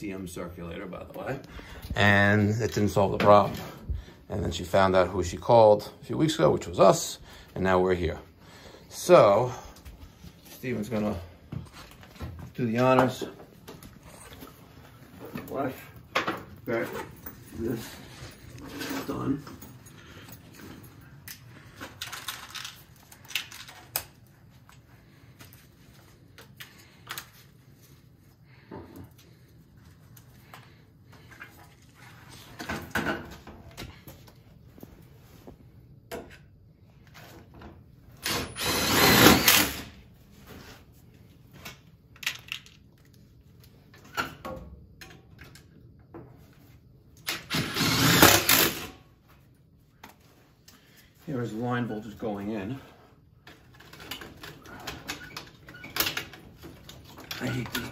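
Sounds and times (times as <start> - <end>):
loud rasping bursts: 38.3 - 39.9, 47.4 - 48.9.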